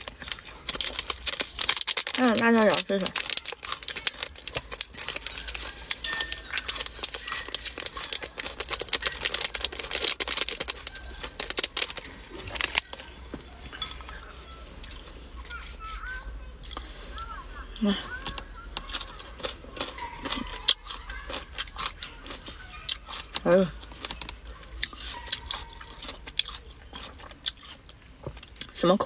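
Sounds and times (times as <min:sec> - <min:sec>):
plastic packet crinkling: 0:00.0 - 0:14.9, 0:18.2 - 0:27.8.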